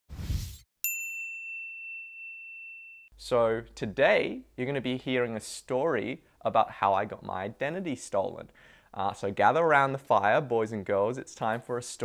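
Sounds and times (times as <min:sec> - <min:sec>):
bright ringing ding: 0:00.8 - 0:03.1.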